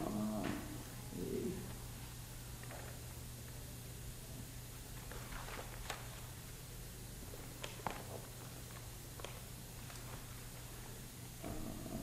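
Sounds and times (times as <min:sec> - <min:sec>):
person humming low murmurs: 0:00.0 - 0:01.8, 0:11.4 - 0:12.0
low room hum: 0:00.0 - 0:12.0.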